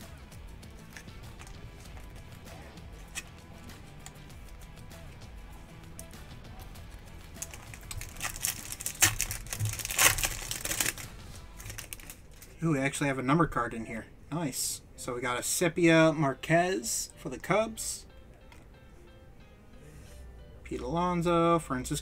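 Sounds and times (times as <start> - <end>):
foil wrapper crinkling and tearing: 7.3 - 12.6.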